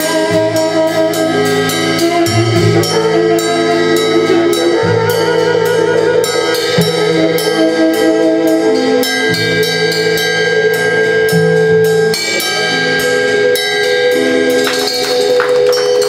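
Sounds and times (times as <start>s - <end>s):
tenor saxophone long notes: 0.0s - 14.9s
upright bass notes: 0.0s - 16.0s.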